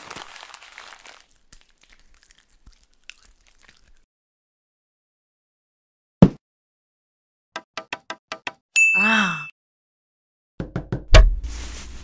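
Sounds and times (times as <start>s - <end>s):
plastic wrapper crinkling: 0.0s - 4.0s.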